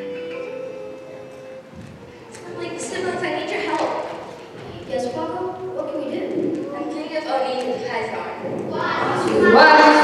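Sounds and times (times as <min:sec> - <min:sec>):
children speaking: 0:02.0 - 0:10.0.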